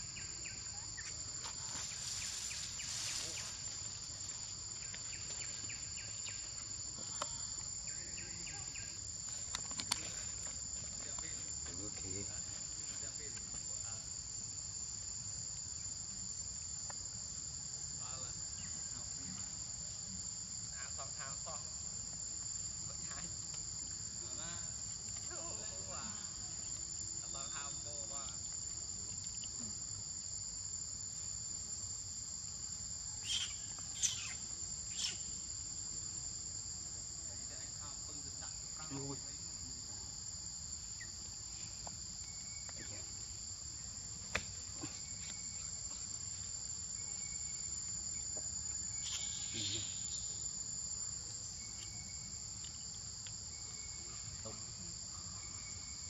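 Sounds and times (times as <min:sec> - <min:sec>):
insect chorus drone: 0:00.0 - 0:56.0.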